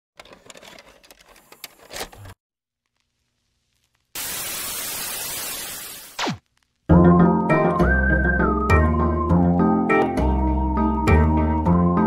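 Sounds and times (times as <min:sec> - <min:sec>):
television static hiss: 0:03.0 - 0:06.9.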